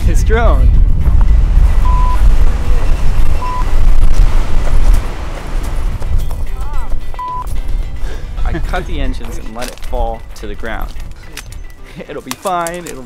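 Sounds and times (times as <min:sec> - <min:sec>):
strong wind buffeting microphone: 0:00.0 - 0:09.2
short beeps: 0:01.8 - 0:02.3, 0:03.3 - 0:03.8, 0:07.2 - 0:07.6.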